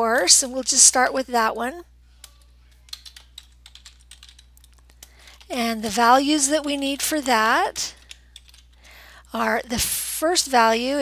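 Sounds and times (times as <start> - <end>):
low steady hum: 0.0 - 11.0
keyboard typing clicks: 2.2 - 7.4, 8.0 - 8.7.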